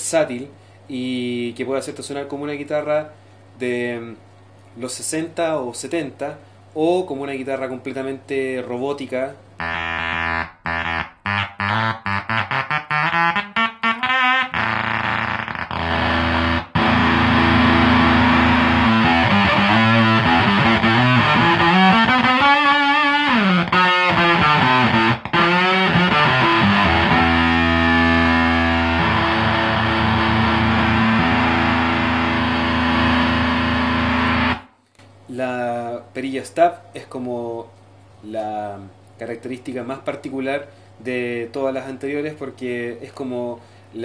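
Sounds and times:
fuzzed electric guitar: 9.6 - 34.8.

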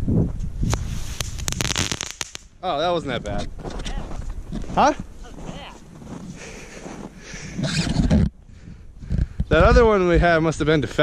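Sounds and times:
rustling: 3.2 - 8.3.

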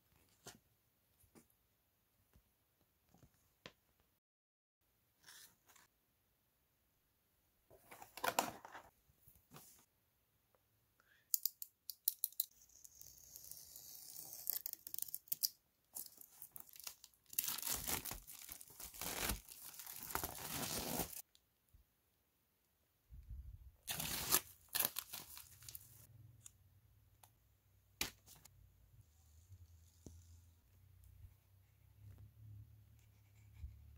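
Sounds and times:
plastic wrapping tearing and crinkling: 16.0 - 21.2, 23.9 - 26.0.

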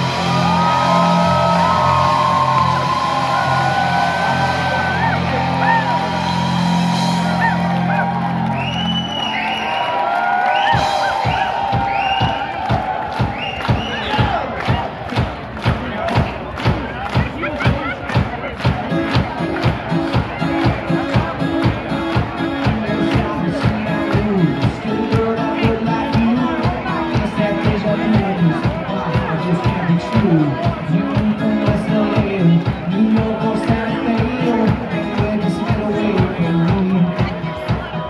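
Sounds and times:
drums beating: 0.0 - 38.0
live amplified band music: 0.0 - 38.0.

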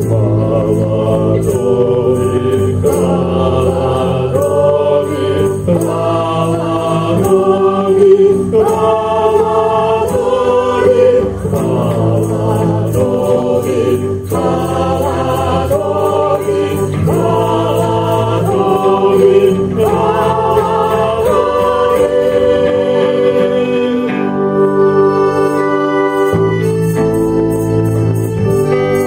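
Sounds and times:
choir singing worship song: 0.0 - 27.2
small band playing: 0.0 - 29.0.

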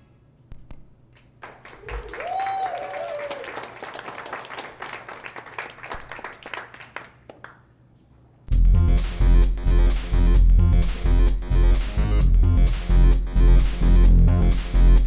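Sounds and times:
audience clapping: 1.2 - 7.7
person whooping: 1.8 - 3.7
electronic music with heavy bass: 8.5 - 15.0.

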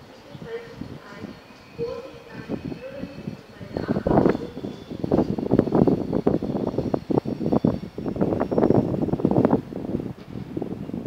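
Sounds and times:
faint voices: 0.0 - 5.4
distant train on tracks: 0.0 - 11.0.

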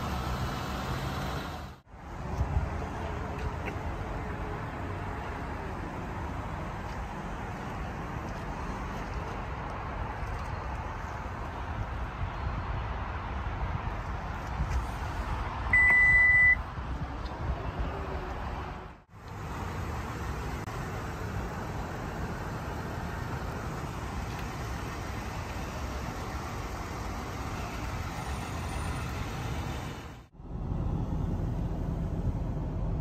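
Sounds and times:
outdoor background noise: 0.0 - 33.0
car electronic beep: 15.7 - 16.6
vehicle engine idling: 19.0 - 33.0.

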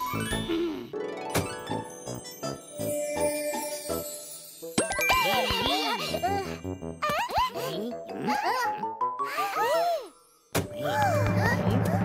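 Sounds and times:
tinkling chime: 1.6 - 7.0.

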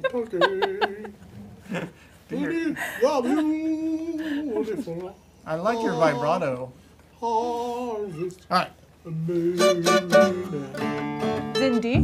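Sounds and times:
man singing unaccompanied: 0.0 - 1.2, 9.0 - 11.2.

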